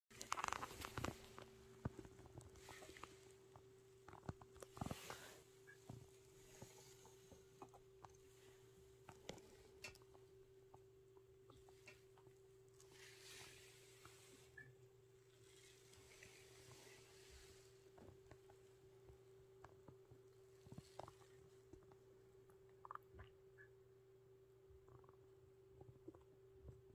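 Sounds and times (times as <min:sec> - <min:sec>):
soft rustles: 0:00.1 - 0:09.7
faint steady hum: 0:00.1 - 0:26.9.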